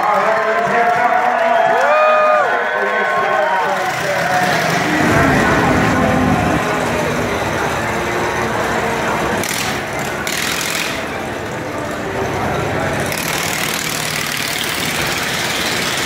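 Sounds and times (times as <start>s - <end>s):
voices: 0.0s - 13.6s
engine idling: 3.8s - 16.0s.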